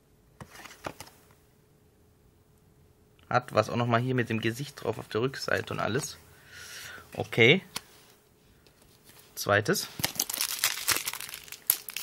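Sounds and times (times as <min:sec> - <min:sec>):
wrapper crinkling and tearing: 0:10.0 - 0:12.0.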